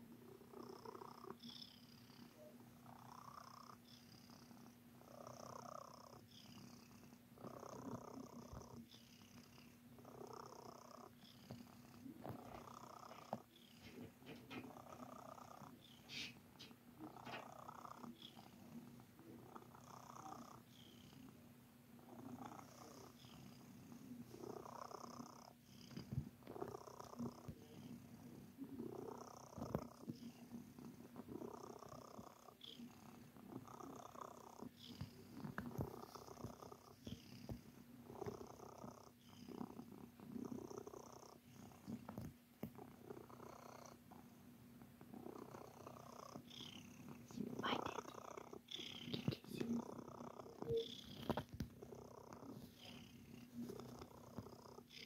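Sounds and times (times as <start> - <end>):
cat purring: 0.0 - 55.0.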